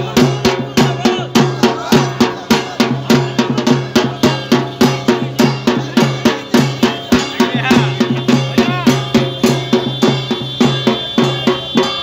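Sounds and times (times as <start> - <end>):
rhythmic drumming: 0.0 - 12.0
high held tone: 6.3 - 12.0.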